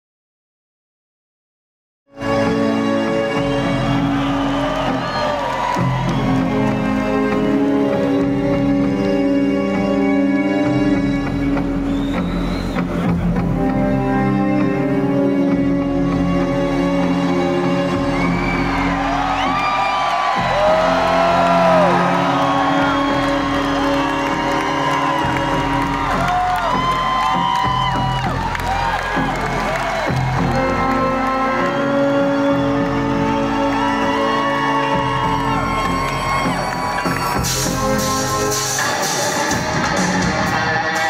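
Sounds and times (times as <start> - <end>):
music with long held chords: 2.2 - 41.0
crowd cheering and whooping: 3.3 - 8.2, 17.0 - 41.0.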